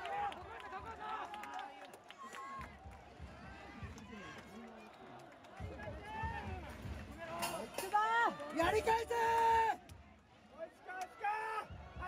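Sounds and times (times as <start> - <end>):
crowd cheering and chanting: 0.0 - 12.0.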